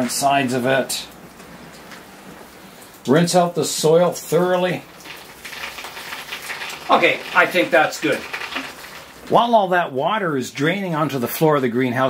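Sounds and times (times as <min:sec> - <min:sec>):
water splashing on leaves: 0:04.4 - 0:09.4.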